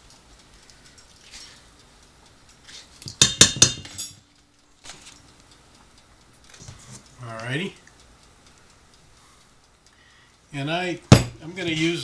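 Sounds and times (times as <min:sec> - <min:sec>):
metal spoon clinking on steel bowl: 0:03.1 - 0:04.2
faint taps and scrapes: 0:06.5 - 0:07.1.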